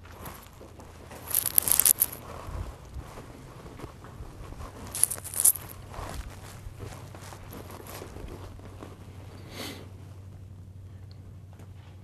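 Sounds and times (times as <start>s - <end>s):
light rustling: 0.0s - 3.2s, 4.6s - 9.1s
footsteps: 0.0s - 3.9s, 4.5s - 9.0s
steady low hum: 0.0s - 12.0s.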